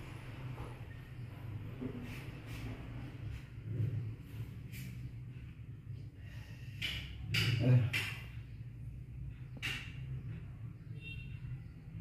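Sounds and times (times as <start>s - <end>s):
steady low hum: 0.0s - 12.0s
man breathing sharply: 6.1s - 6.8s.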